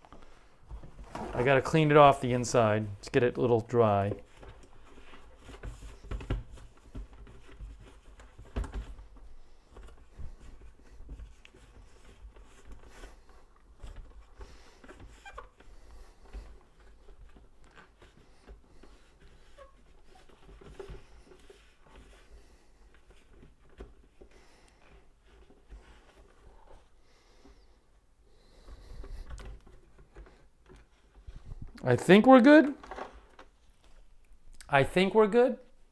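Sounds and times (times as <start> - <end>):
paper towel rubbing inside popper: 4.2 - 24.2.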